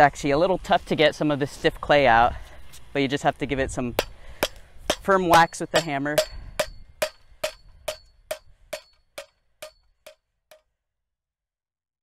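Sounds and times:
rubber mallet striking metal bucket: 4.0 - 9.8.

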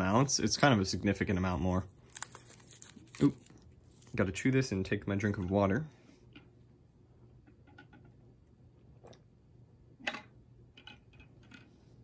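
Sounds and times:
foil wrapper crinkling: 2.0 - 4.2.

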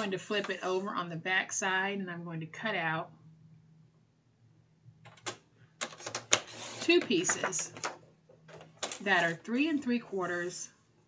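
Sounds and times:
paper trimmer clicks and scraping: 6.0 - 7.2.

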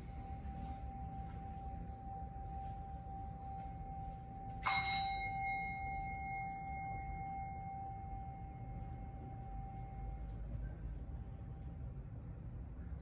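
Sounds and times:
meditation bell ringing: 0.0 - 10.8.

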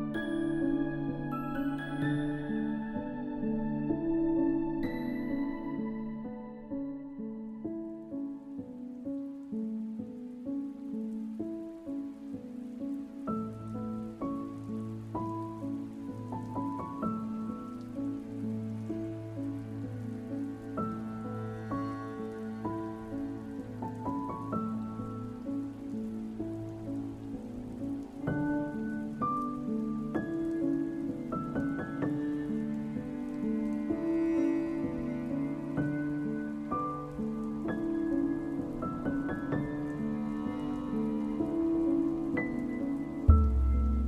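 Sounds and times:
piano notes: 0.0 - 44.0
rain patter: 0.0 - 44.0.

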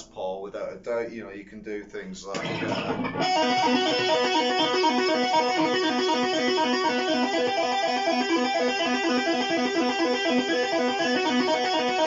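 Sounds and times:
distorted electric guitar notes: 2.3 - 12.0.

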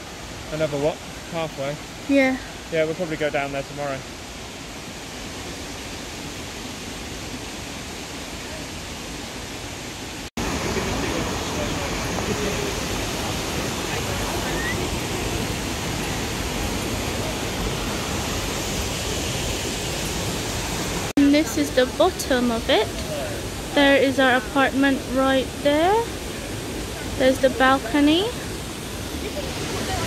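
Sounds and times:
waterfall rushing: 0.0 - 30.0.

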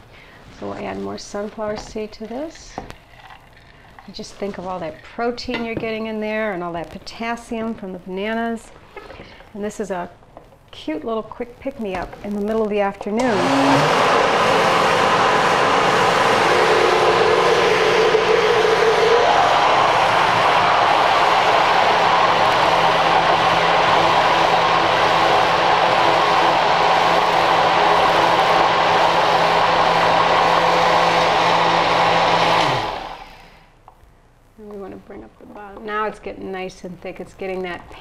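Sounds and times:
blender motor running: 13.2 - 33.6.

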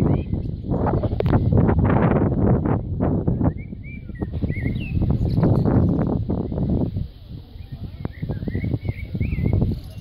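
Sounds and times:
songbird warbling chirps: 0.0 - 1.1, 3.3 - 6.9, 7.5 - 10.0.

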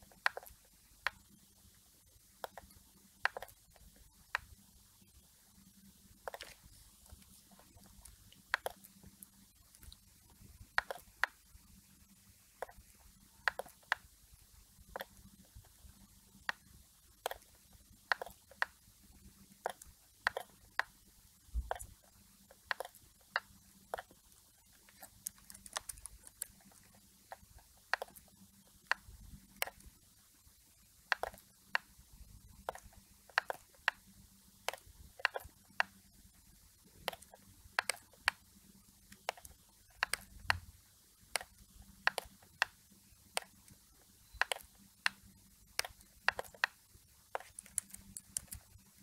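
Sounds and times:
computer mouse clicking: 0.0 - 1.3, 2.4 - 4.6, 6.2 - 11.4, 12.6 - 14.1, 14.9 - 18.8, 19.6 - 20.9, 21.6 - 29.9, 31.1 - 34.0, 34.6 - 36.0, 37.0 - 38.4, 39.1 - 49.0.

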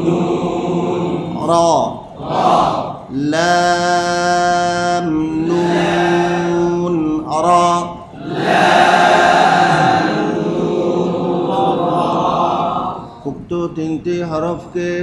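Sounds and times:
group of voices reciting in unison: 0.0 - 15.0
man chanting through a microphone: 1.2 - 2.2, 2.9 - 8.2, 13.2 - 15.0.

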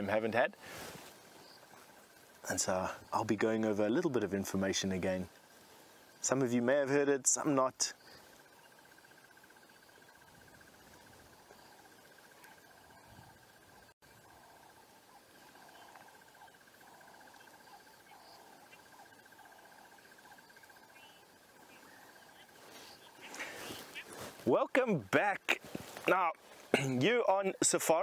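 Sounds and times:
insect trill: 0.0 - 28.0.

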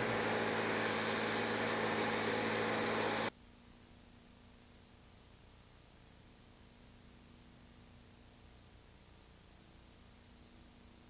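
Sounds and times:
hiss: 0.0 - 3.3
truck engine hum: 0.0 - 3.3.

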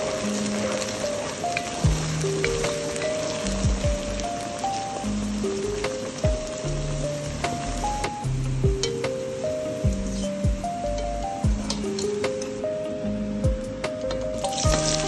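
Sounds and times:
okra sizzling in hot oil: 0.0 - 13.4, 14.0 - 15.0
background music with deep beat: 0.0 - 15.0.

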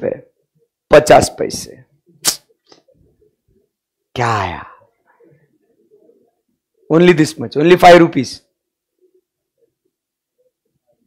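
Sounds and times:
man speaking: 0.9 - 1.9, 4.1 - 4.9, 6.9 - 8.5.

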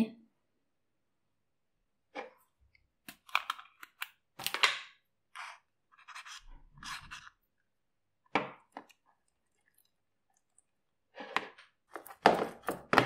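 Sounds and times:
paintbrush scraping dough: 5.4 - 7.4.

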